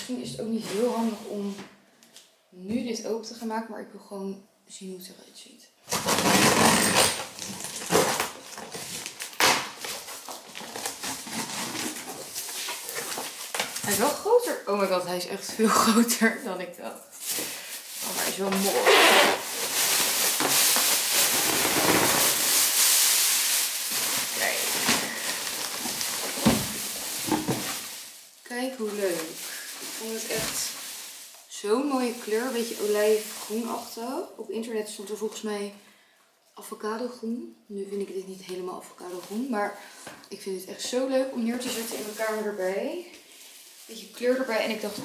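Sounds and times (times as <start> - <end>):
plastic wrap and cardboard rustling: 0.0 - 1.7, 5.8 - 35.7, 38.3 - 45.0
scissors slitting packing tape: 5.9 - 12.0
cardboard tearing and scraping: 5.9 - 14.1, 18.0 - 28.2.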